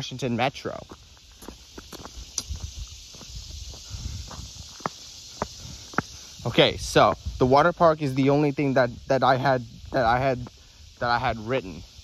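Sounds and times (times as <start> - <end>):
steady high hiss: 0.0 - 12.0
footsteps on asphalt: 0.8 - 6.2.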